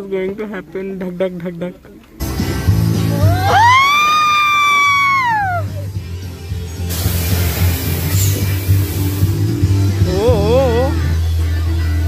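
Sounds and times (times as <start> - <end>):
rushing hiss: 6.5 - 10.0.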